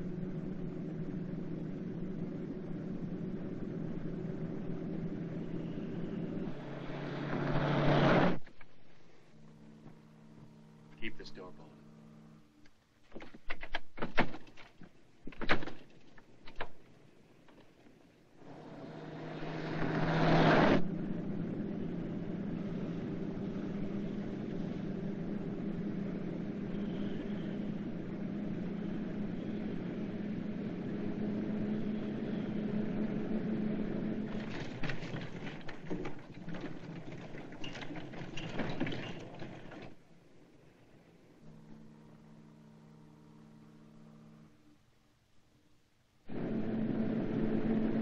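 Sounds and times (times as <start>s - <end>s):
sharp clicks and knocks: 12.6s - 17.7s
car engine running: 18.4s - 37.5s.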